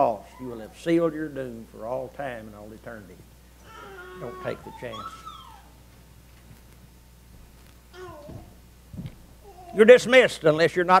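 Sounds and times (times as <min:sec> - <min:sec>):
child whining: 0:03.6 - 0:05.8, 0:07.9 - 0:08.6, 0:09.4 - 0:09.8.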